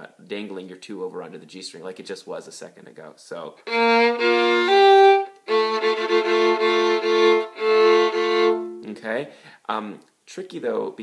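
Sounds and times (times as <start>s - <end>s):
violin bowed in double stops: 3.7s - 8.9s.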